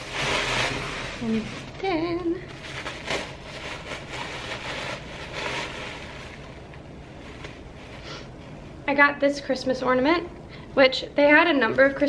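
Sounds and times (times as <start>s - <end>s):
tissue paper rustling: 0.0s - 8.3s.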